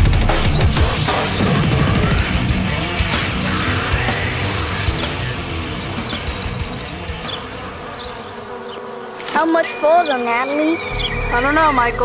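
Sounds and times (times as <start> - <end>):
music: 0.0 - 8.3, 10.8 - 12.0
high-pitched insect buzz: 1.0 - 12.0.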